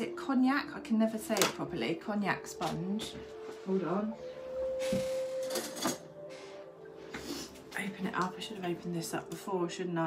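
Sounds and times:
soft relaxing music: 0.0s - 10.0s
rustling and handling noises: 2.6s - 8.8s.

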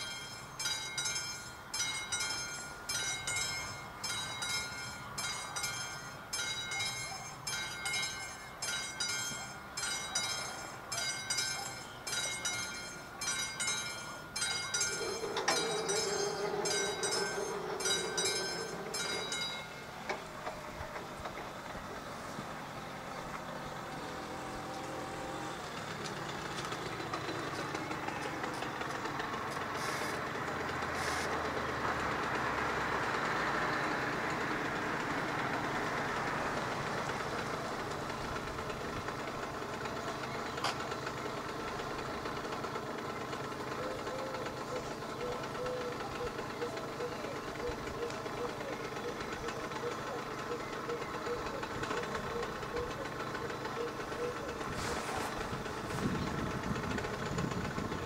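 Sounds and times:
level crossing bell ringing: 0.0s - 20.1s.

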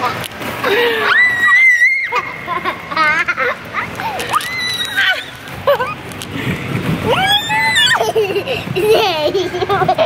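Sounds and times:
people squealing with laughter: 0.7s - 3.6s, 4.3s - 6.0s, 7.1s - 8.4s.

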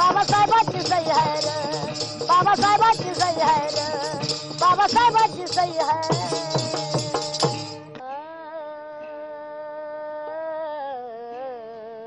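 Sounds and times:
woman singing a long note: 8.0s - 12.0s.

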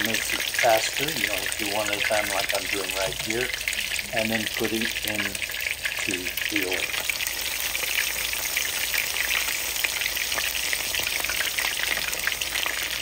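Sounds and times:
shrimp deep-frying in hot oil: 0.0s - 13.0s.

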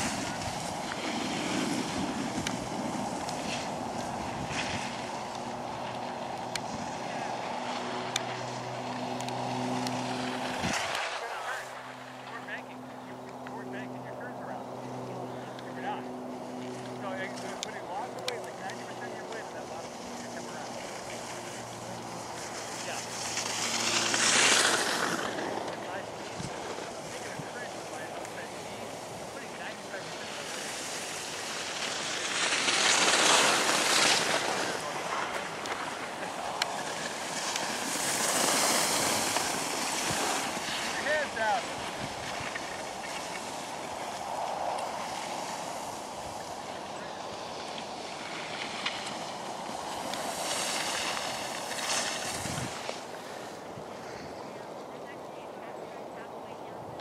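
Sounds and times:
wind on microphone: 0.0s - 8.0s, 8.6s - 10.9s, 41.6s - 48.0s, 49.2s - 54.9s
skis scraping over packed snow: 0.0s - 57.0s.

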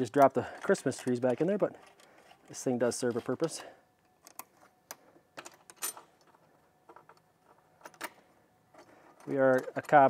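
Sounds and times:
metallic clicks of tool and bolts: 3.2s - 10.0s.

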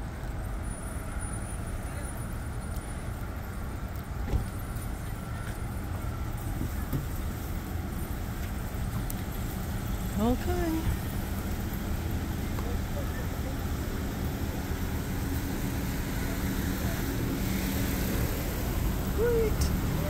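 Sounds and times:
car traffic rumble: 0.0s - 20.0s.

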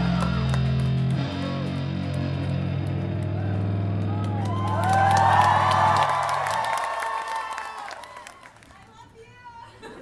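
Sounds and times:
electric guitar and bass chord: 0.0s - 4.6s
audience clapping: 0.0s - 9.0s
audience cheering and whooping: 3.2s - 8.6s.

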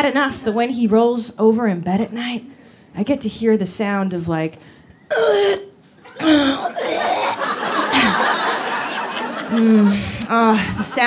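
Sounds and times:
audience laughing: 6.0s - 11.0s
woman making vocal noises: 6.2s - 7.4s.

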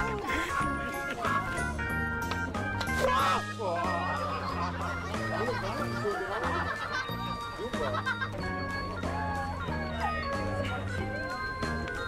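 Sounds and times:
people laughing: 0.0s - 1.8s, 2.9s - 11.8s
background music with bass line: 0.0s - 12.0s
people exclaiming: 2.9s - 8.2s.

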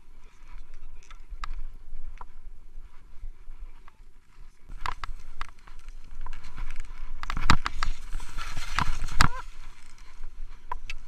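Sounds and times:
skis sliding through snow: 4.6s - 10.5s
knocks and clicks of skis and poles: 4.7s - 11.0s.

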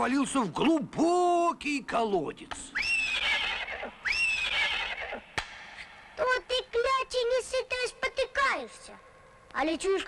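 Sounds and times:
horse neighing: 2.8s - 5.3s.

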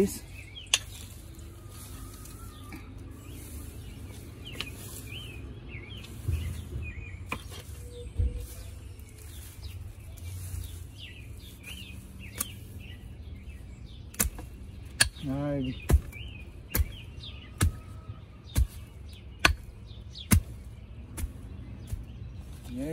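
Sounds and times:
small birds chirping: 0.0s - 22.9s
low thuds: 5.9s - 9.1s.

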